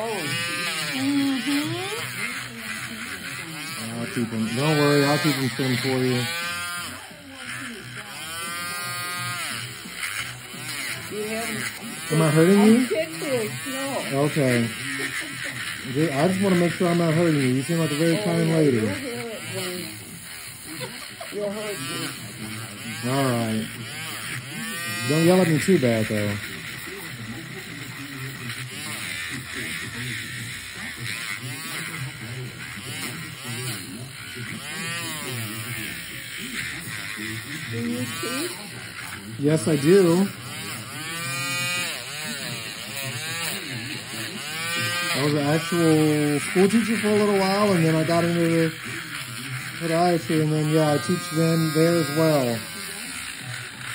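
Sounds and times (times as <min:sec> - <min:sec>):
drill bit whining: 0:00.0 - 0:53.9
electric nail file grinding: 0:00.0 - 0:53.9.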